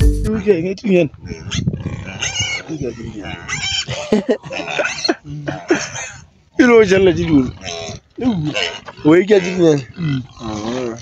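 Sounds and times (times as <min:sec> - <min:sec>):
music: 0:00.0 - 0:00.3
person speaking: 0:00.0 - 0:00.4
livestock calling: 0:01.3 - 0:11.0.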